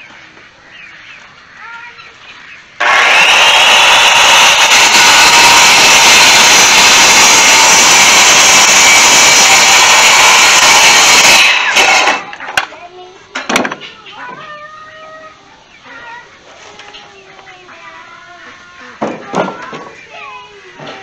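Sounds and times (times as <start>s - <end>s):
circular saw cutting wood: 2.8s - 12.5s.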